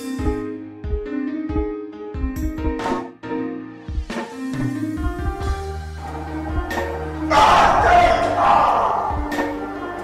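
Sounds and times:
film score music: 0.0s - 10.0s
loud harsh shouting: 7.3s - 9.4s.

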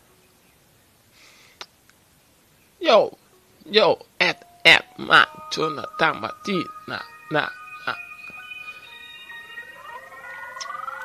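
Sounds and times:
held backing track tones: 3.0s - 11.0s
rising siren-like electronic tone: 5.1s - 11.0s.

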